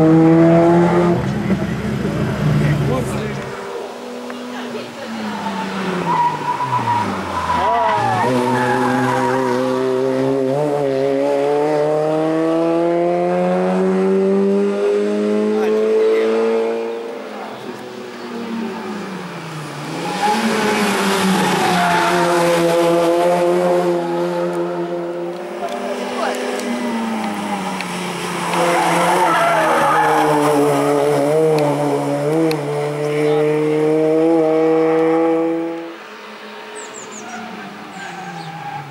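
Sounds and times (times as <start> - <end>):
race car engine accelerating: 0.0 - 35.9.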